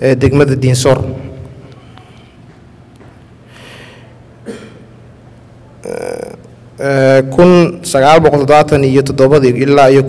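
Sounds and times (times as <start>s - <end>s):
man speaking: 0.0s - 1.4s, 5.8s - 10.0s
man clearing throat: 4.4s - 5.0s, 5.8s - 6.4s.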